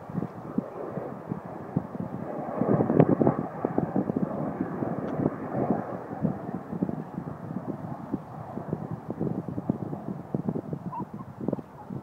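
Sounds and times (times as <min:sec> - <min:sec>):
distant jet engine rumble: 0:00.0 - 0:12.0.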